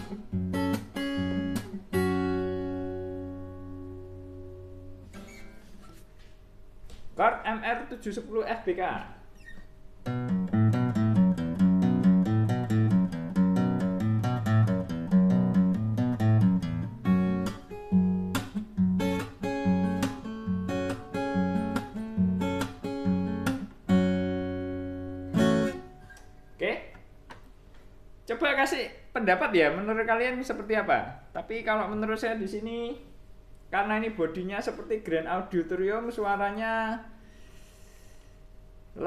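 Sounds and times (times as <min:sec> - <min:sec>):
acoustic guitar strummed chords: 0:00.0 - 0:06.0, 0:10.0 - 0:26.4
acoustic guitar fingerpicking: 0:00.0 - 0:06.3, 0:09.4 - 0:26.5.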